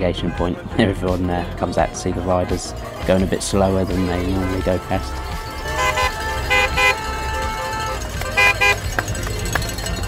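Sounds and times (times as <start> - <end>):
car horns beeping: 4.1 - 10.0.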